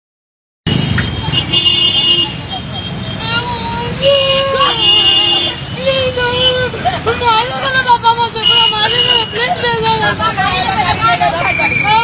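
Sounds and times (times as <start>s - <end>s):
street traffic: 0.6s - 12.0s
people's voices: 1.0s - 12.0s
vehicle horn: 1.3s - 2.9s, 4.6s - 5.7s.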